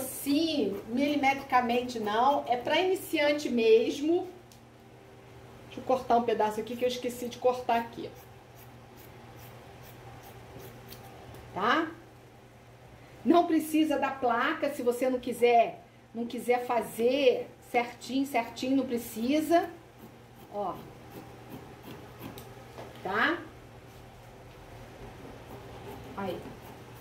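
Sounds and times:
scissors snipping fabric: 10.6s - 11.4s.

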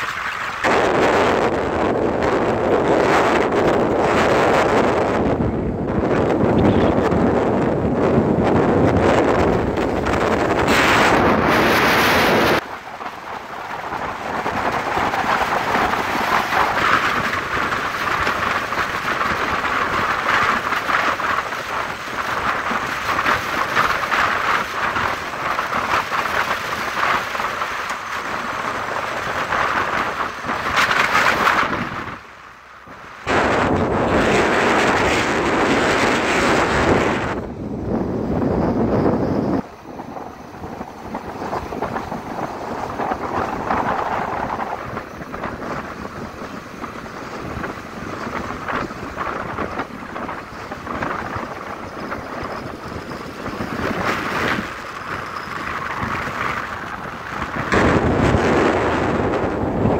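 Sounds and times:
vehicle and road noise: 0.0s - 59.9s
wind buffeting microphone: 0.0s - 59.9s.

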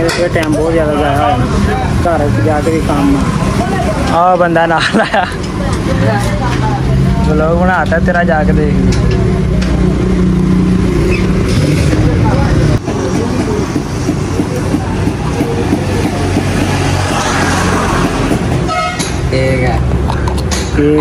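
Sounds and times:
general noise: 0.0s - 21.0s.

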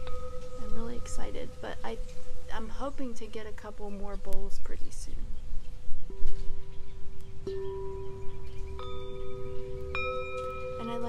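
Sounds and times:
singing bowls ringing: 0.0s - 2.8s, 6.6s - 11.0s.

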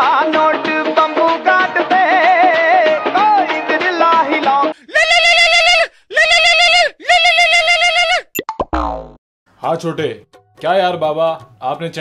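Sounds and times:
sliding pitch sound effect: 8.4s - 9.2s.

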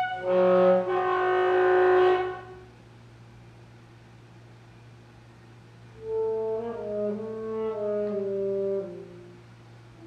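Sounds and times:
alto saxophone note: 0.0s - 2.7s
low steady hum: 0.0s - 10.0s.

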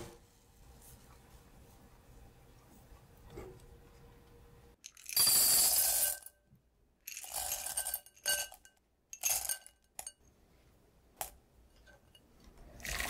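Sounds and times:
chocolate pieces rattling in glass bowl: 4.9s - 6.3s, 7.1s - 8.6s, 9.2s - 9.7s.

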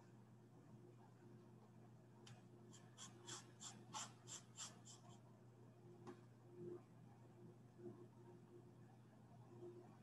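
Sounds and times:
paintbrush scratching on canvas: 2.7s - 5.2s.

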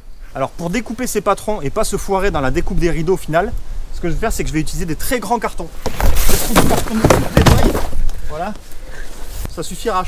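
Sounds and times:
tree branches rustling: 0.0s - 10.0s
dull knocks: 5.8s - 8.0s.

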